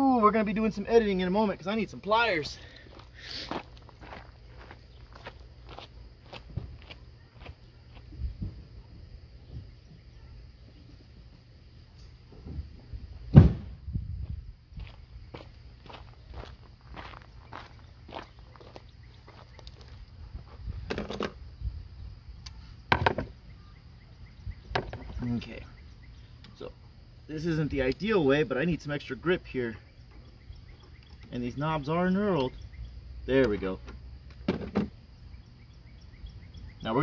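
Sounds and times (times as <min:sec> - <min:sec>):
footsteps: 0:02.5 - 0:08.7, 0:14.2 - 0:20.8
loud thud: 0:13.3 - 0:14.0.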